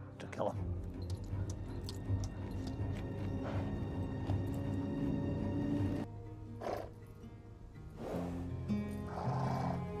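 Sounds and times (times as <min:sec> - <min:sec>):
horse snorting: 0:06.6 - 0:07.0, 0:07.9 - 0:10.0.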